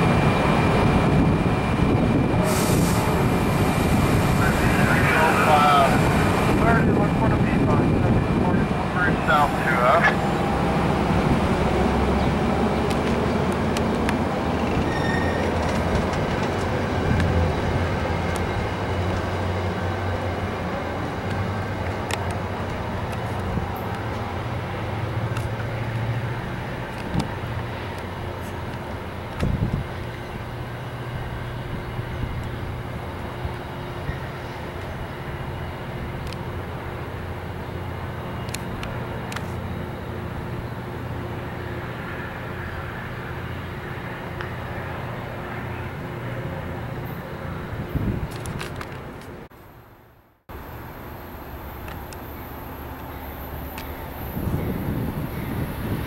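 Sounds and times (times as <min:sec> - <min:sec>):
train coaches rolling on rails: 0:00.0 - 0:49.5, 0:50.6 - 0:56.0.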